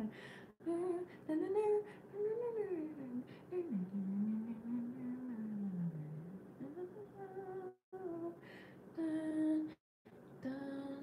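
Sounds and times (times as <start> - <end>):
woman humming low note: 3.6 - 8.3.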